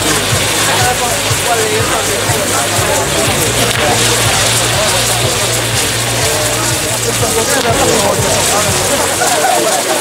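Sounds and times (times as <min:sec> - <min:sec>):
crowd voices: 0:00.0 - 0:10.0
firework wheel hissing rush: 0:00.0 - 0:10.0.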